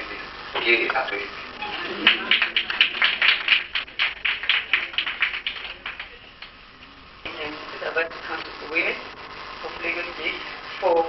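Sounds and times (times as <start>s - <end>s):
small group clapping: 1.7s - 6.6s.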